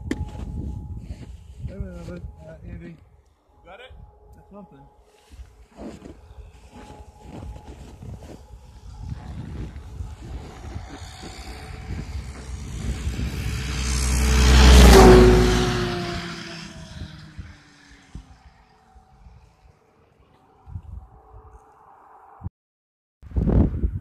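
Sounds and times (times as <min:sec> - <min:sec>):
snowmobile passing by: 0:05.1 - 0:21.8.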